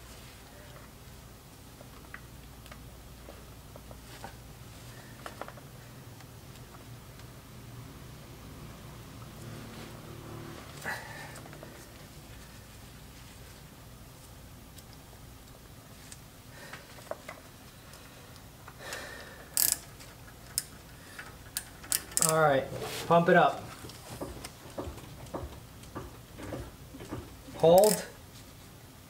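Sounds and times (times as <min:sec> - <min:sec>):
rag rubbing: 0:22.2 - 0:25.6.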